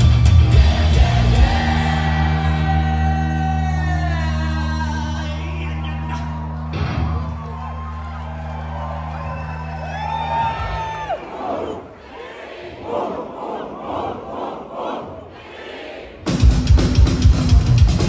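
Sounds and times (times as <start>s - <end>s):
rock band with drums: 0.0s - 4.8s, 16.2s - 18.0s
low guitar and bass chord: 0.0s - 7.1s
crowd shouting and whooping: 0.0s - 13.8s.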